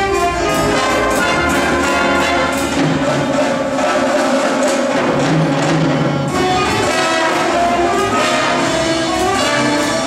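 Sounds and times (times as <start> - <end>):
jazz big band playing: 0.0 - 10.0.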